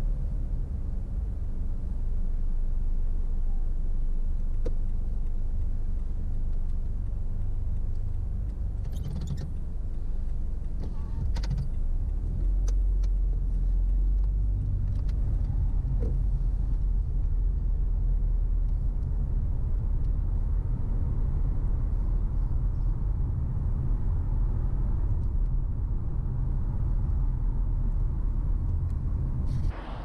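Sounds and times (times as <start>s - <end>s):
car engine and tyre rumble: 0.0s - 30.0s
faint clicks: 4.4s - 16.2s.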